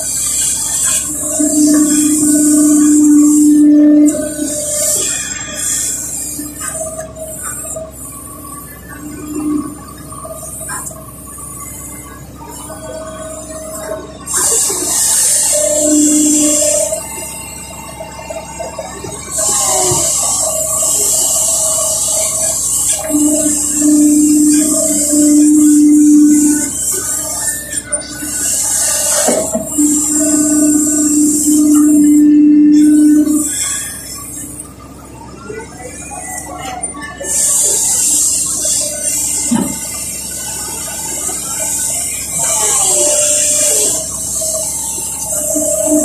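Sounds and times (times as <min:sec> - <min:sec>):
excavator diesel engine and hydraulics: 0:00.0 - 0:46.0
steady whine: 0:00.0 - 0:46.0.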